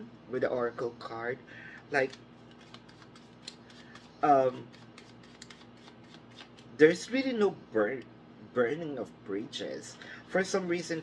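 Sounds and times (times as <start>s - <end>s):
low steady hum: 0.0s - 11.0s
cards clicking and snapping: 2.0s - 6.7s.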